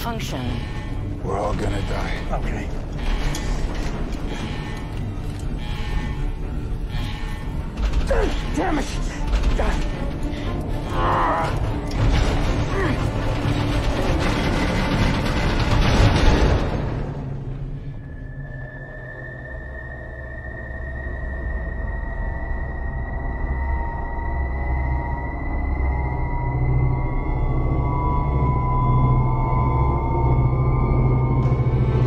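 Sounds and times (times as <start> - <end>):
low drone: 0.0 - 32.0
loud rumbling and rattling: 0.1 - 17.9.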